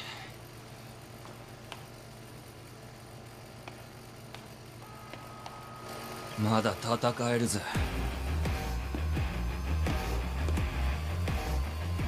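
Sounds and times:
low hum: 4.8 - 12.0
steady high tone: 4.8 - 12.0.

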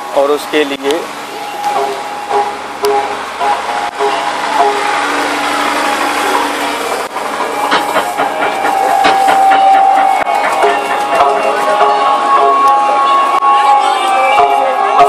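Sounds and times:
crowd noise: 0.0 - 15.0
drum strikes: 7.4 - 12.0.

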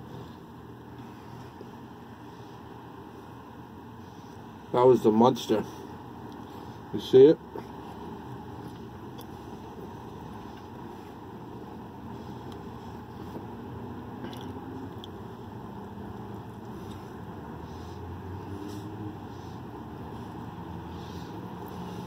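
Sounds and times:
steady low hum: 0.0 - 22.0
person chewing food: 8.5 - 11.2, 14.2 - 15.3, 16.2 - 17.1.

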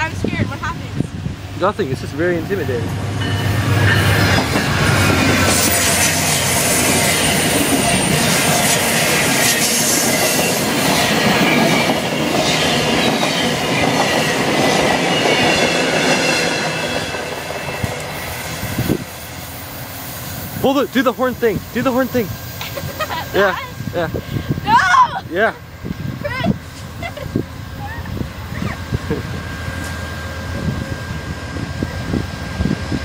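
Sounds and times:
high wheel whines: 0.0 - 33.0
train wheels rumbling on rails: 0.0 - 33.0.

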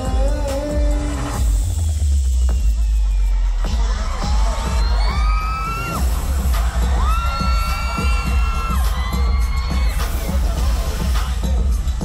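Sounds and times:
live pop music with heavy bass: 0.0 - 12.0
audience screaming: 1.9 - 11.5.

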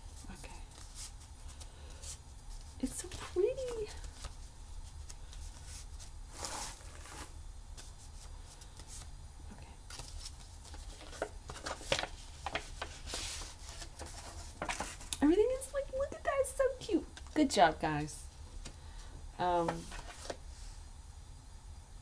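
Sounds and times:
paper envelope rustling: 0.1 - 9.1, 9.9 - 16.5, 19.7 - 20.4.

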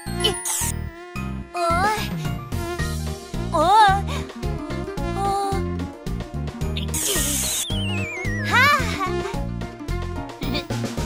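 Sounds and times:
bouncy children's music: 6.6 - 11.0
aerosol spray can hiss: 6.9 - 7.6
wobbling whistle gliding down: 7.4 - 8.6.

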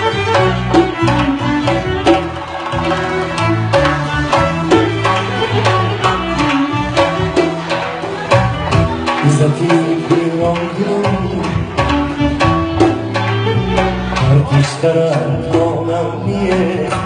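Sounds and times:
bowed fiddle melody: 0.0 - 17.0.

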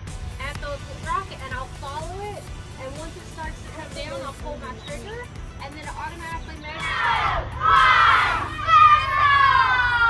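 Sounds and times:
children shouting and cheering: 6.7 - 10.0.

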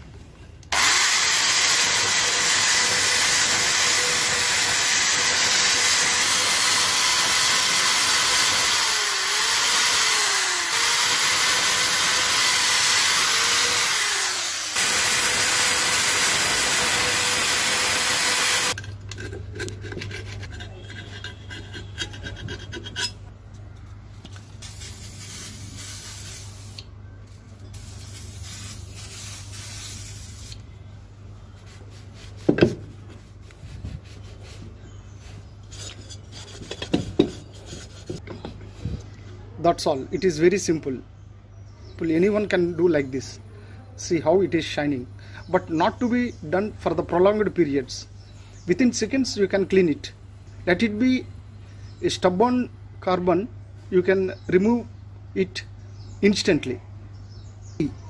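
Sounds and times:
electric drill with wire brush: 0.7 - 18.8
rubbing and handling noises: 31.4 - 39.0.

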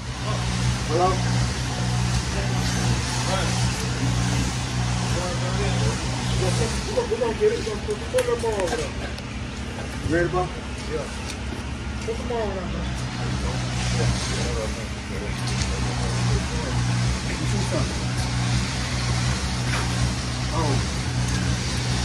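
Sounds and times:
machinery engine hum: 0.0 - 22.0.

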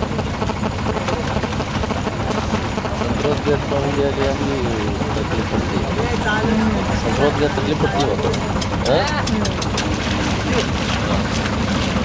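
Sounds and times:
people talking: 0.0 - 11.2
boat engine droning: 0.0 - 12.0.

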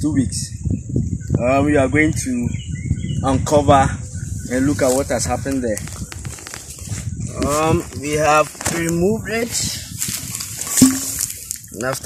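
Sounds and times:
metal basin clanking: 10.7 - 11.4.

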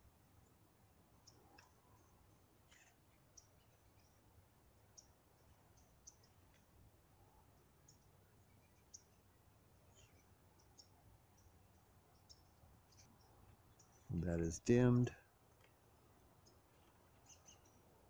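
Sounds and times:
faint high-pitched ticks: 1.2 - 4.2, 4.8 - 9.1.

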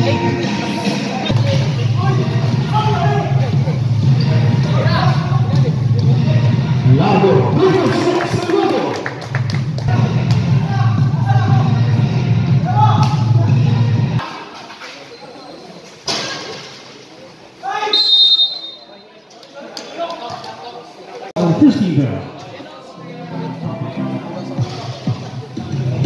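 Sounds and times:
crowd voices: 0.0 - 26.0
referee's whistle: 17.9 - 19.1.

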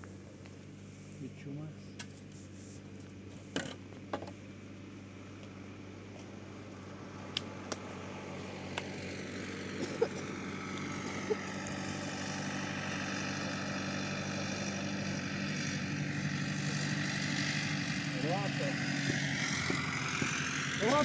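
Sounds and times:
motor engine running: 0.0 - 21.0.

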